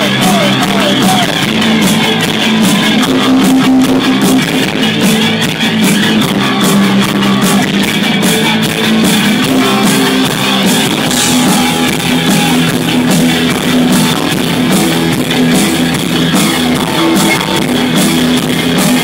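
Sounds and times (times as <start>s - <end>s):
drum kit beat: 0.0s - 19.0s
electric guitars: 0.0s - 19.0s.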